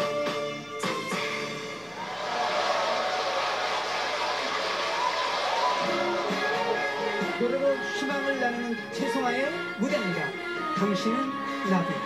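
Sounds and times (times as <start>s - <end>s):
studio audience applauding and cheering: 0.9s - 8.5s.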